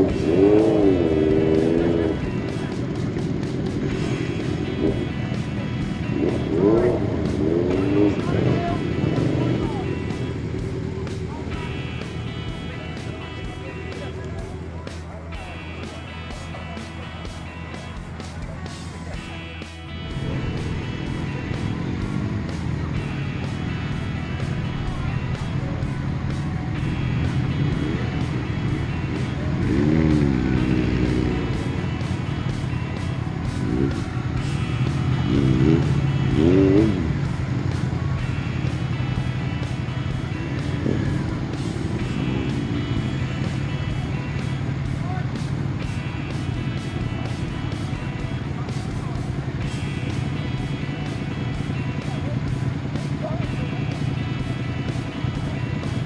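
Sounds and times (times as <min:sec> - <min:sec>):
motorcycles revving: 0:00.0 - 0:56.0
music: 0:00.0 - 0:56.0.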